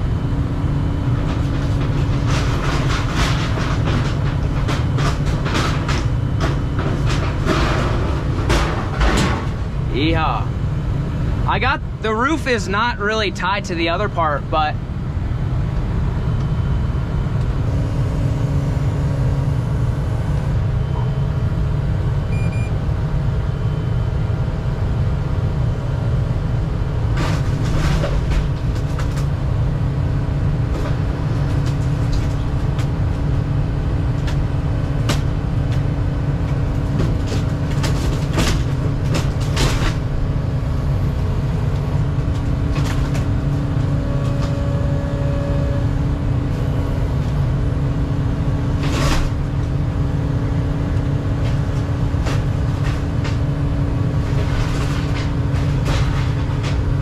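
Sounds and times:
diesel engine running under load: 0:00.0 - 0:57.0
hydraulic whine: 0:16.3 - 0:21.4, 0:38.9 - 0:51.8
metal roof cracking and creaking: 0:54.2 - 0:57.0.

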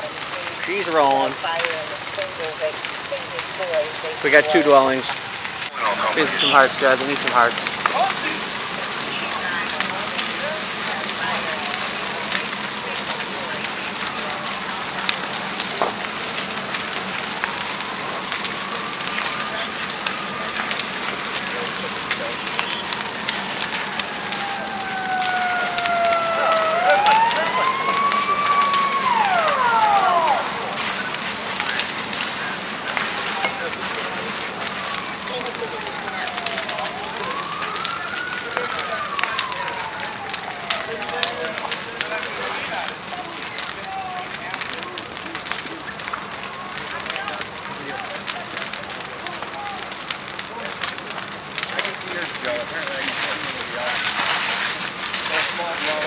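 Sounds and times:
house fire crackling and popping: 0:00.0 - 0:56.0
sirens wailing: 0:00.0 - 0:56.0.

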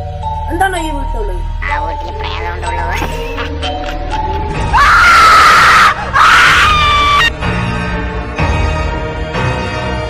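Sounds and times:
background music: 0:00.0 - 0:10.0
loud screams: 0:04.8 - 0:07.3.

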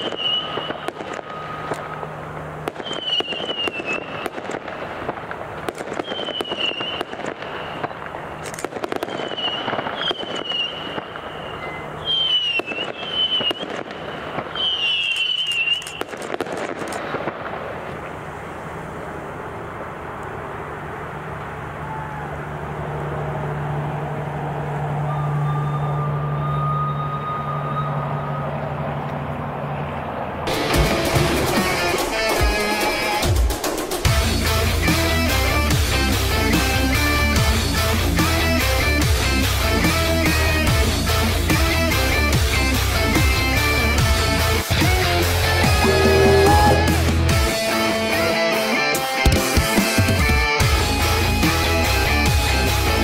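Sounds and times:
high thin firework whistle: 0:00.0 - 0:01.9, 0:02.7 - 0:04.4, 0:06.0 - 0:08.0, 0:08.8 - 0:16.2, 0:25.1 - 0:28.4, 0:45.7 - 0:47.1
low engine drone: 0:00.0 - 0:05.8, 0:17.4 - 0:48.4, 0:50.6 - 0:53.0
fireworks cracking and banging: 0:00.0 - 0:19.1, 0:30.5 - 0:47.9
thin high whine: 0:18.3 - 0:29.1, 0:45.6 - 0:47.5.

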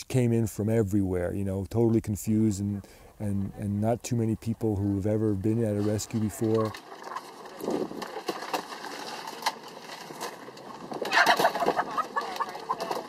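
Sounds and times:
hens clucking and squawking: 0:10.8 - 0:13.0.

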